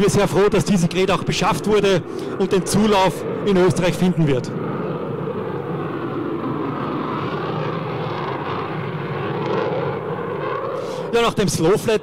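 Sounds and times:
jet engines on afterburner: 0.0s - 12.0s.

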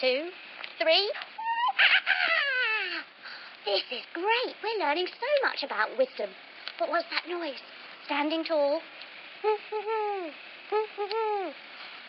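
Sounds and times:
owl hooting: 1.4s - 3.1s, 9.4s - 11.6s.

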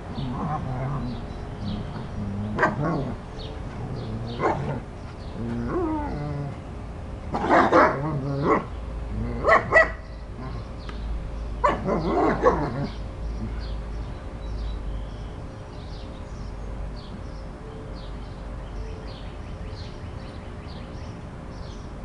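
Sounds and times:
dogs barking and yipping: 0.2s - 6.6s, 7.3s - 10.7s, 11.6s - 13.0s.

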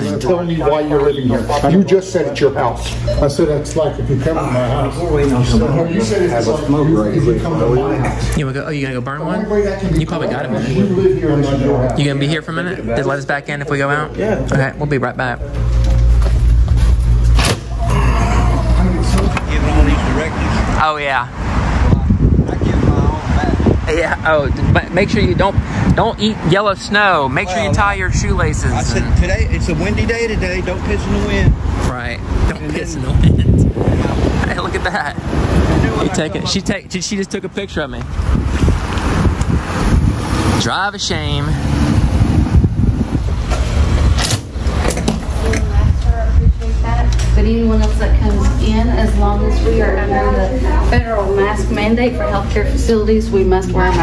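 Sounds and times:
wind rumbling on microphone: 21.3s - 53.6s.

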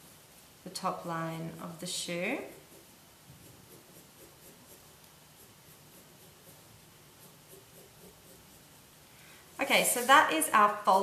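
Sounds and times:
pencil scratching on paper: 0.0s - 9.0s.

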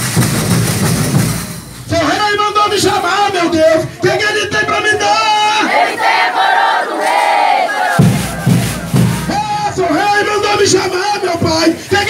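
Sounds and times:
group chanting in held notes: 5.6s - 9.3s
low thumps: 8.0s - 10.1s.

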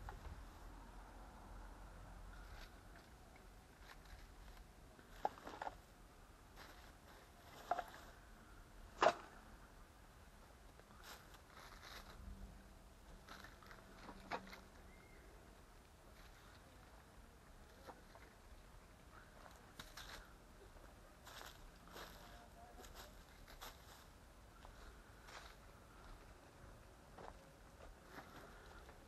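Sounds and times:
faint background noise: 0.0s - 29.0s.

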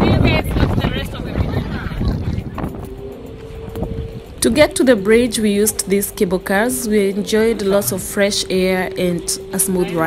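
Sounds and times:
wind rumbling on microphone: 0.0s - 10.0s.

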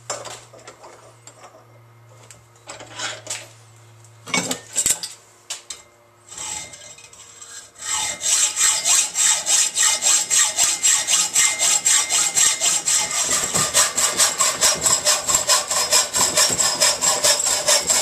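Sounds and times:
hacksaw cutting steel tube: 6.3s - 18.0s.

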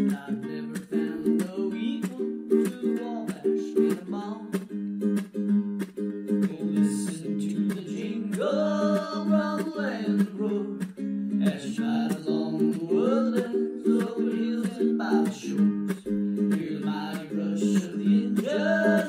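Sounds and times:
ukulele strumming chords: 0.0s - 19.0s.

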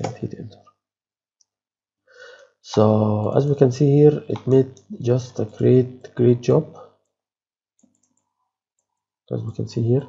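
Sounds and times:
faint mouse clicks: 4.3s - 5.0s, 7.8s - 9.1s.

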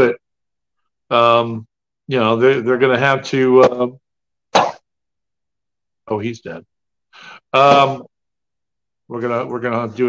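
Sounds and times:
person coughing: 4.6s - 4.8s, 7.6s - 8.1s.

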